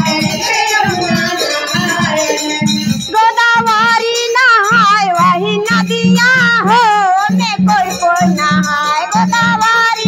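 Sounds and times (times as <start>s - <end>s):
low rhythmic accompaniment: 0.0s - 10.0s
woman singing into a microphone: 0.0s - 10.0s.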